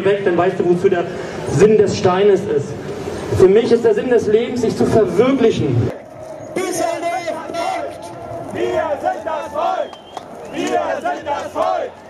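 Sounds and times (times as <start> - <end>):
crowd shouting a chant: 6.0 - 12.0.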